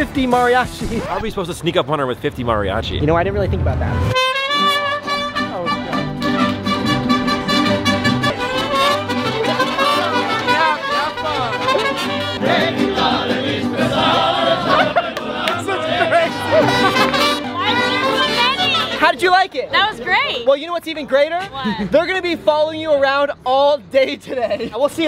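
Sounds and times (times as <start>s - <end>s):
mariachi band playing: 3.6s - 22.2s.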